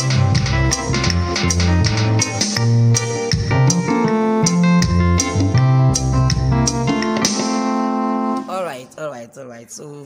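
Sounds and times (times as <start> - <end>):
electronic keyboard chord: 0.0 - 9.0.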